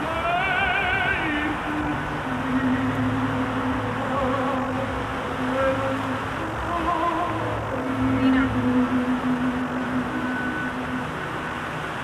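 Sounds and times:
fountain water jets: 0.0s - 12.0s
music with long low note: 0.0s - 12.0s.

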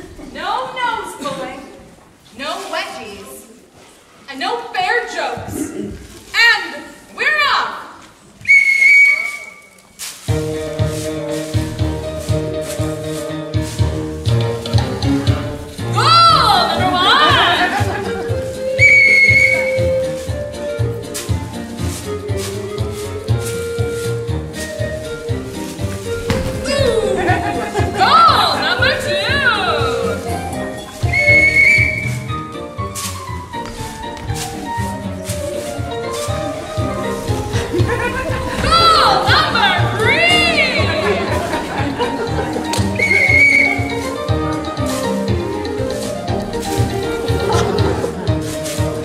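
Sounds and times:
referee's whistle blast: 8.5s - 9.8s, 18.8s - 19.8s, 31.1s - 32.2s, 43.0s - 43.9s
backing music with steady beat: 10.2s - 49.0s
person calling out: 26.6s - 27.4s, 38.6s - 41.2s.

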